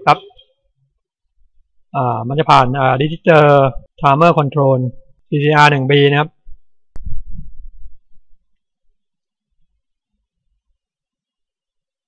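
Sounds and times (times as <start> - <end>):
low muffled thumping: 6.4 - 8.3.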